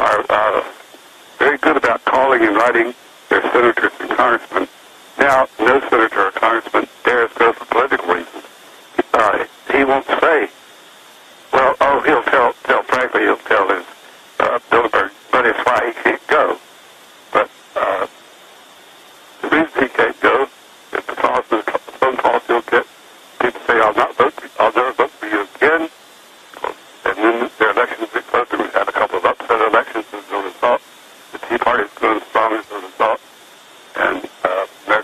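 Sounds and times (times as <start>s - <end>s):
man talking over telephone: 0.0s - 10.5s, 11.5s - 16.6s, 17.3s - 18.1s, 19.4s - 25.9s, 26.6s - 30.8s, 31.4s - 33.2s, 34.0s - 35.0s.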